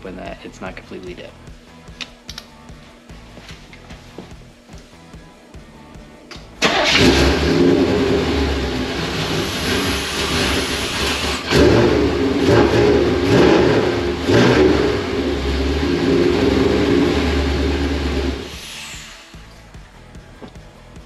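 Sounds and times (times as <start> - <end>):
car engine starting and revving: 6.6 - 19.2.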